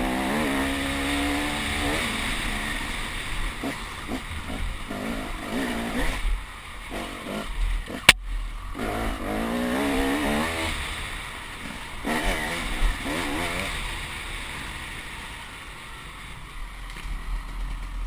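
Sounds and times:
motorcycle engine revving: 0.0s - 16.0s.

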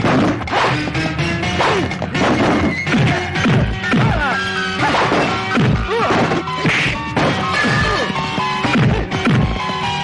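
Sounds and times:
background music: 0.0s - 10.0s
fight whacks and smash: 4.8s - 8.0s.

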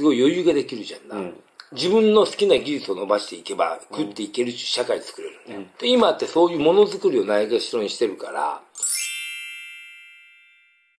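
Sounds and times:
bright chime ringing: 8.8s - 11.0s.

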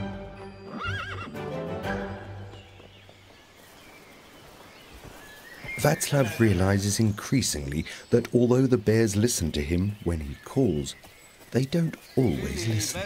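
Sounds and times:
background music: 0.0s - 3.0s
horse whinnying: 0.7s - 1.4s.

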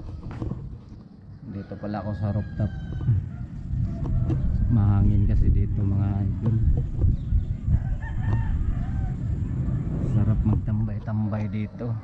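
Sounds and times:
rooster crowing: 1.3s - 5.6s, 7.6s - 9.5s
wind buffeting microphone: 2.1s - 12.0s.

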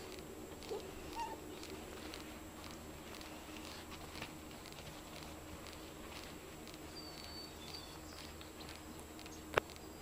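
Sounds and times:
dog whimpering: 0.6s - 1.4s.

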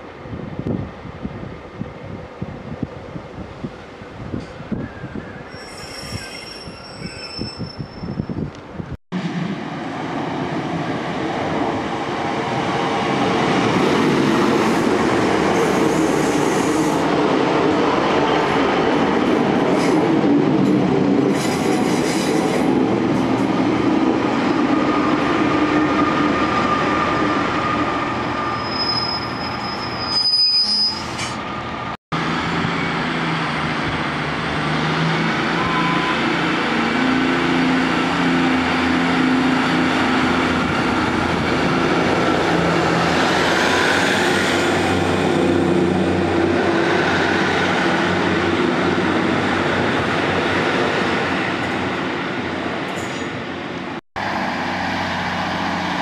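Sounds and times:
train brakes squealing: 4.4s - 8.4s, 15.6s - 17.1s, 26.6s - 31.4s, 35.4s - 36.5s, 52.9s - 53.4s
train wheels running on rails: 8.6s - 27.2s.

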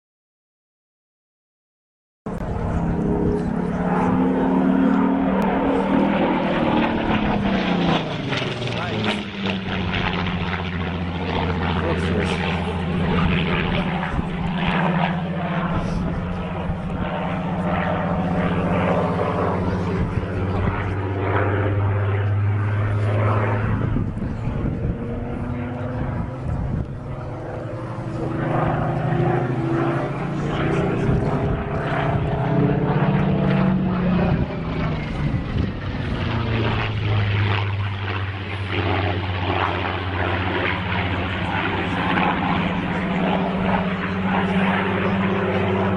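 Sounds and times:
propeller plane flying overhead: 2.3s - 45.9s.

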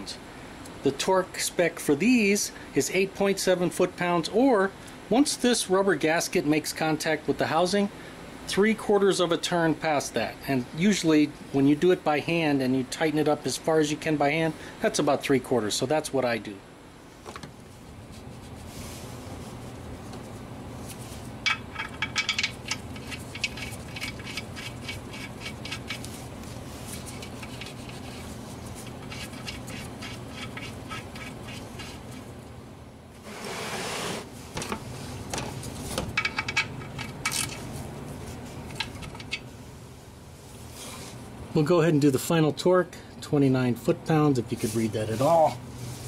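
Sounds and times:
steady low hum: 0.0s - 46.0s.

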